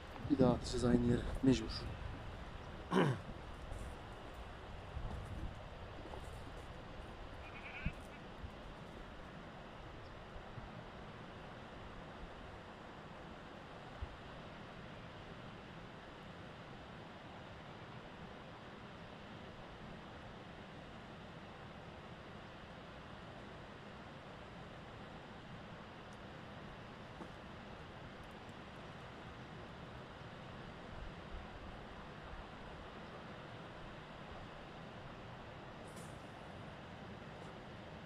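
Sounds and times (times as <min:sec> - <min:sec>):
outdoor background noise: 0:00.0 - 0:38.0.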